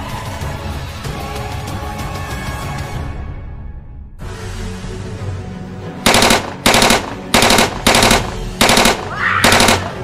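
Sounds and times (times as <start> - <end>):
automatic gunfire bursts: 6.1 - 10.0.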